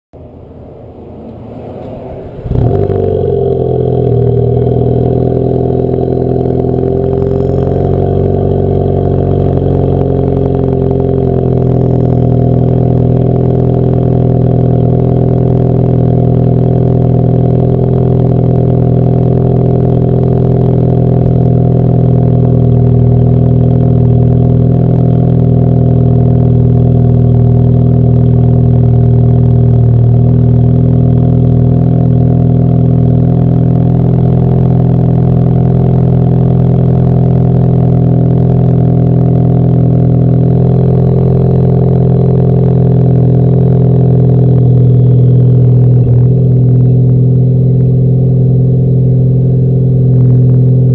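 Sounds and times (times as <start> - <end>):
car engine idling: 0.1 - 50.9.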